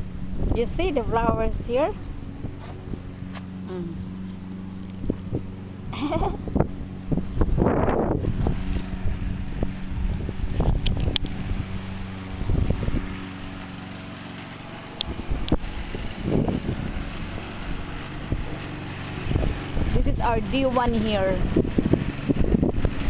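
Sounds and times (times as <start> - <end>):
wind buffeting microphone: 0.0 - 3.3, 4.0 - 13.4, 15.0 - 23.0
lawn mower running: 0.0 - 23.0.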